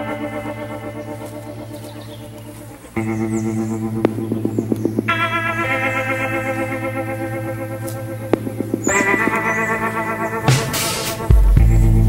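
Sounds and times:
held wavering music chord: 0.0s - 12.0s.

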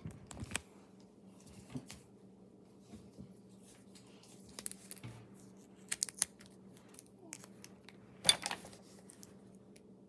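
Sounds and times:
plastic clicks and crinkles: 0.0s - 0.7s, 4.4s - 9.9s.

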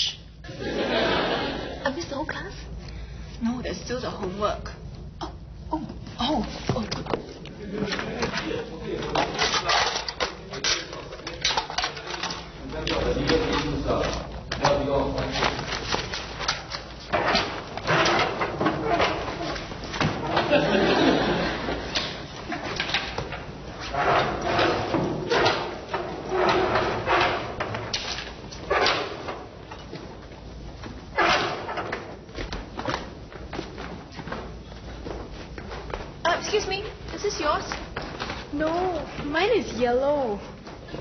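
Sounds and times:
studio audience laughter: 0.5s - 1.9s, 20.4s - 21.9s
footsteps on steps: 31.9s - 41.0s.

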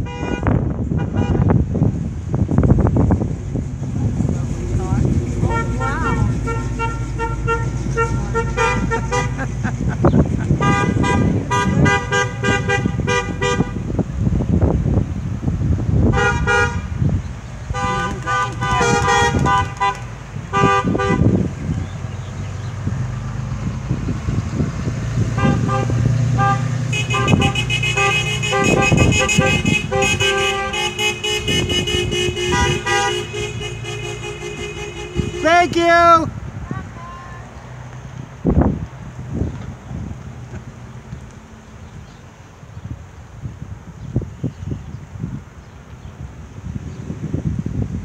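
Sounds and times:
car horns honking: 0.0s - 1.6s, 3.0s - 14.0s, 16.0s - 21.8s, 25.2s - 37.2s
car engines: 0.0s - 48.0s.

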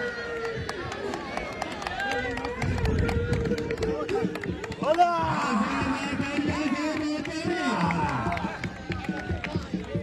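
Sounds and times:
sharp claps: 0.4s - 10.0s
men calling and shouting: 3.2s - 10.0s.

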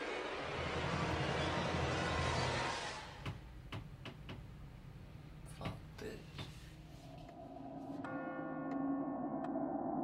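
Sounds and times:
low ominous drone: 6.8s - 10.0s.

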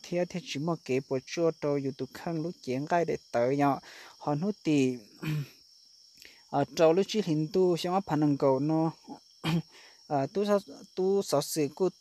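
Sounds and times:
person speaking: 0.0s - 5.5s, 6.5s - 12.0s.

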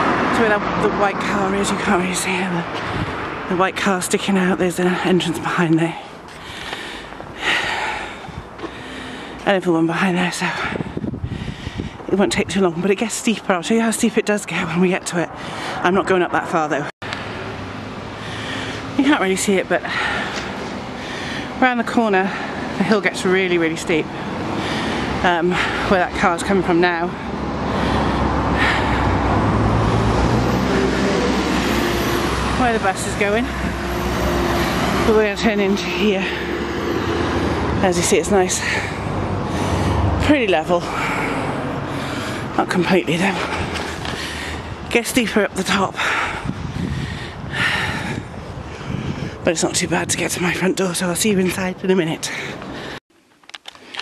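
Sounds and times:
tyre and road noise: 0.0s - 54.0s
woman breathing hard: 6.3s - 9.4s, 10.6s - 12.1s, 18.0s - 19.0s, 19.8s - 21.6s, 24.1s - 25.9s, 27.2s - 32.4s, 38.6s - 40.2s, 40.8s - 42.6s, 43.4s - 44.9s, 46.0s - 49.4s
bus engine hum: 15.8s - 44.8s.

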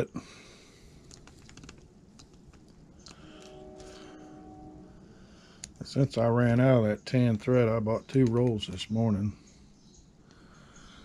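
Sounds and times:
faint steady tone: 2.8s - 8.2s.

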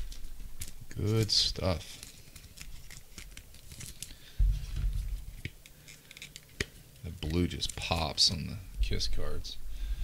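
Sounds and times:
low bump: 4.4s - 5.3s.

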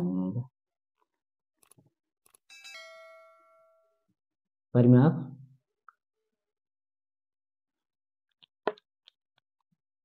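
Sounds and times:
two-note electronic chime: 2.5s - 4.0s.

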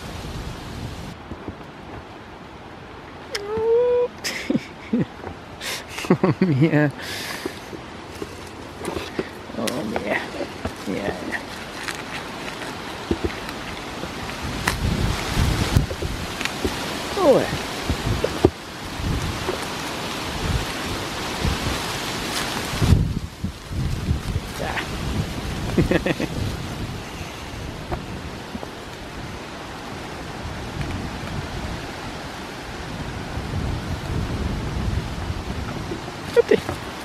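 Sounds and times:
wind buffeting microphone: 0.0s - 2.1s, 7.4s - 37.0s
leaves and twigs rustling: 0.0s - 37.0s.

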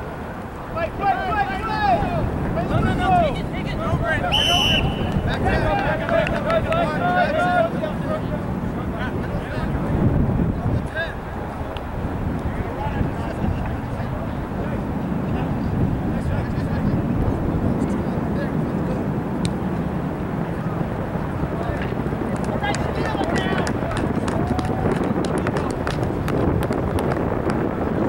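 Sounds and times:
wind rumbling on microphone: 0.0s - 28.0s
distant shouting: 0.7s - 9.5s.

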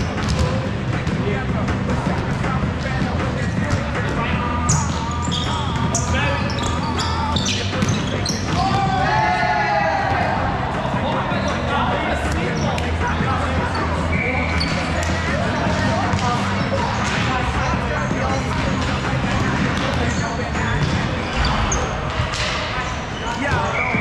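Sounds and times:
sneakers squeaking on floor: 0.0s - 9.4s, 10.8s - 24.0s
players calling out: 0.0s - 24.0s.

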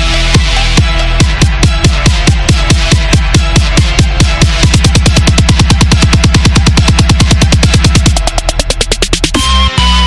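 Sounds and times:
electronic drum roll: 1.2s - 9.4s.

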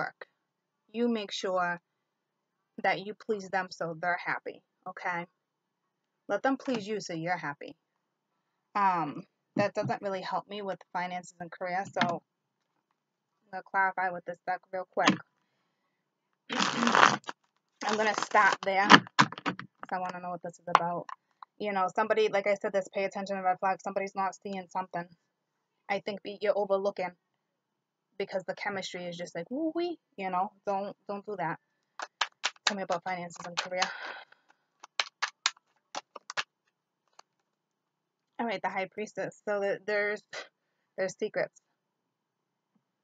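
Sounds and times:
woman speaking: 0.0s - 0.2s, 1.0s - 1.8s, 2.8s - 5.3s, 6.3s - 7.7s, 8.8s - 12.2s, 13.5s - 15.2s, 16.5s - 19.0s, 19.8s - 25.1s, 25.9s - 27.1s, 28.2s - 31.6s, 32.6s - 34.2s, 38.4s - 41.5s
cards being riffle shuffled: 16.5s - 19.9s, 32.0s - 32.8s, 33.4s - 34.0s, 34.8s - 36.4s.

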